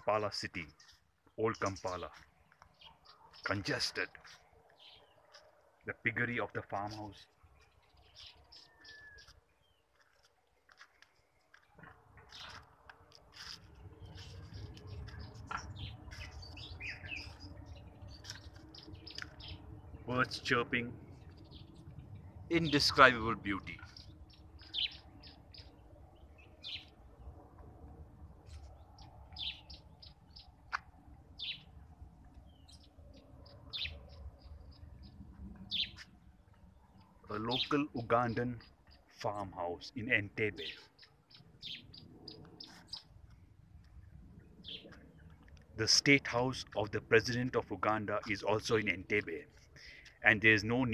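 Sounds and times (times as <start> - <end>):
birds chirping: 0.0 - 50.9.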